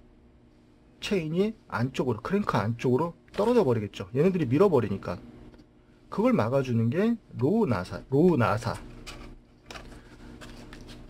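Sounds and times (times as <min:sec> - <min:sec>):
cardboard rustling and scraping: 0:08.8 - 0:11.0.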